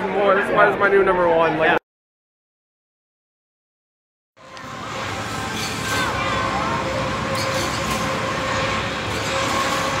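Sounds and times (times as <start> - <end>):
ride machinery humming: 4.4 - 10.0.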